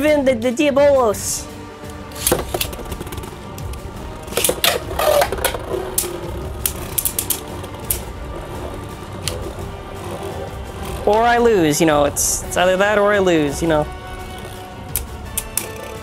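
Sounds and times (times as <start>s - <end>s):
spinning tops clacking: 2.2s - 11.4s.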